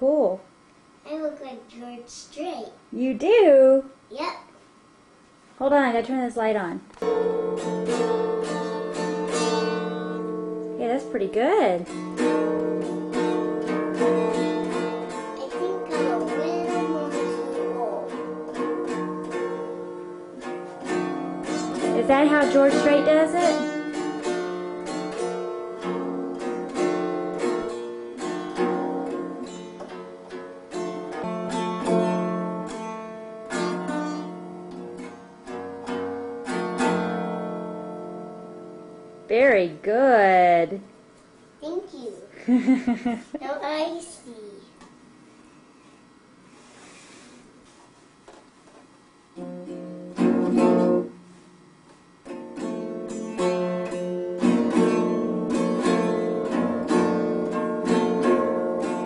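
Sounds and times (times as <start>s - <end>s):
small guitar chord strummed: 7.0s - 39.4s, 49.4s - 51.4s, 52.2s - 59.0s.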